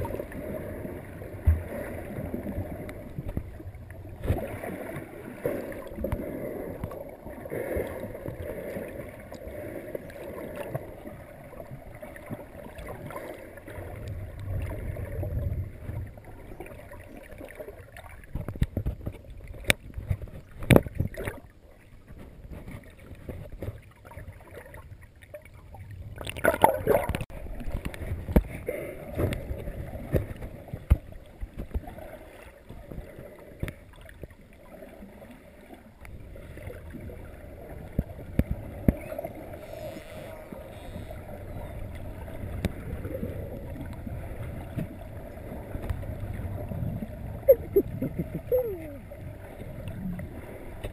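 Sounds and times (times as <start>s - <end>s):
underwater rush of water: 0.0s - 50.9s
sharp knocks underwater: 4.2s - 4.7s, 18.3s - 21.4s, 26.2s - 32.0s, 37.9s - 39.1s.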